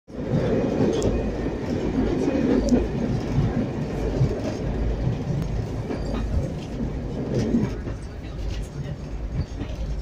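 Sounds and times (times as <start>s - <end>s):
diesel train rumbling on rails: 0.1s - 10.0s.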